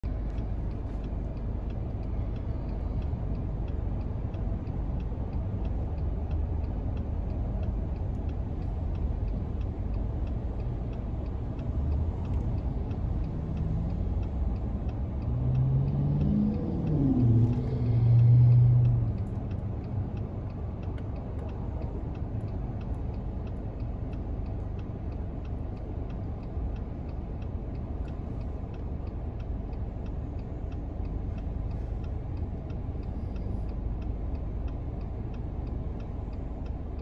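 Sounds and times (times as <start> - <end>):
low engine drone: 0.0 - 37.0
turn signal ticking: 0.0 - 37.0
vehicle pulling away: 13.0 - 20.0.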